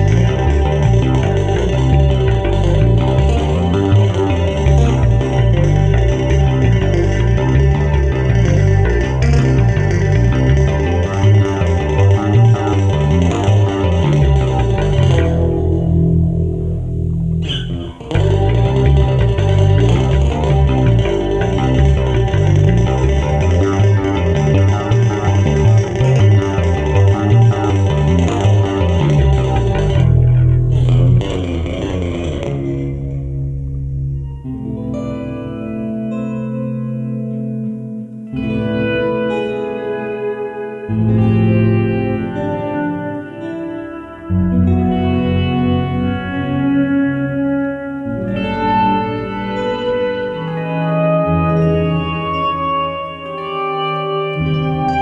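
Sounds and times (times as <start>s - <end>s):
quick bass line: 0.0s - 35.9s
chapman stick playing: 0.0s - 55.0s
electric guitar playing: 0.0s - 55.0s.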